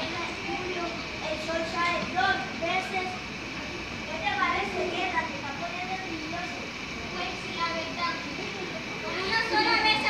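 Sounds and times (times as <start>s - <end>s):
children speaking: 0.0s - 10.0s.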